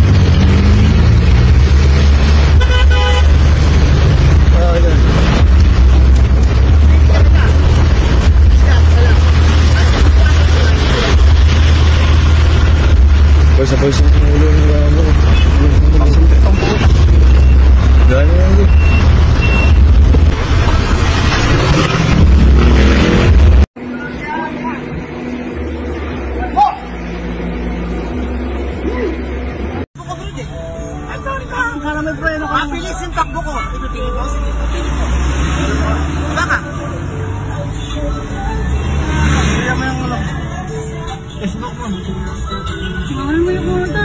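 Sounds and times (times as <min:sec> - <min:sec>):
street traffic rumble: 0:00.0 - 0:44.0
vehicle horn honk: 0:02.6 - 0:03.4
high electronic beeps: 0:16.0 - 0:20.0.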